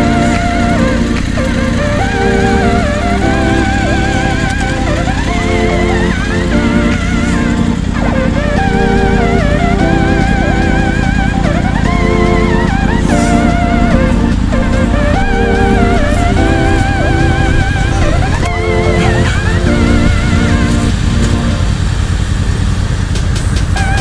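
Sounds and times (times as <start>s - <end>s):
background music: 0.0s - 21.8s, 23.2s - 24.0s
motorcycle engines rumbling: 0.0s - 24.0s.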